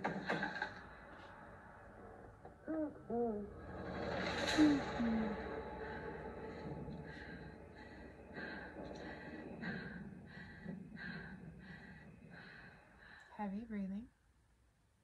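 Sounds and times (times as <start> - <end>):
heavy rapid breathing: 4.7 - 13.4.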